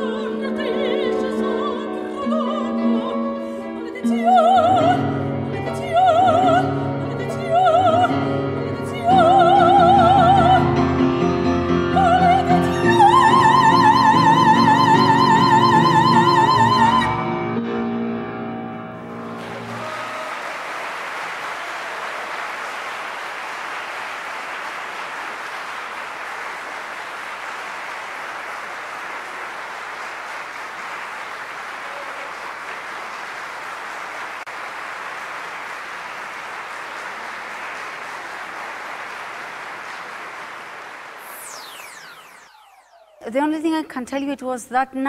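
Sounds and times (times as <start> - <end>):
soprano singing with piano: 0.0 - 17.5
audience applauding: 19.3 - 42.2.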